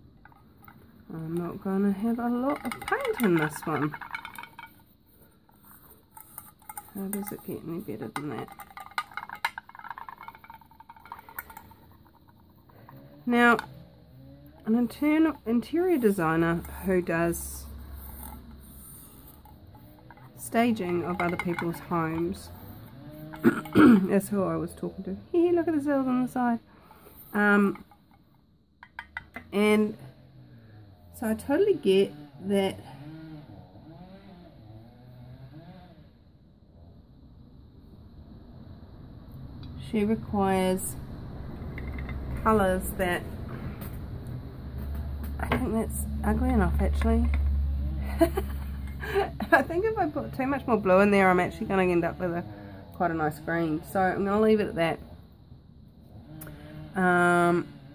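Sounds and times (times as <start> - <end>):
low background hum: 0.0 - 57.9
stick stirring paint in metal tin: 0.2 - 13.7, 14.6 - 24.2.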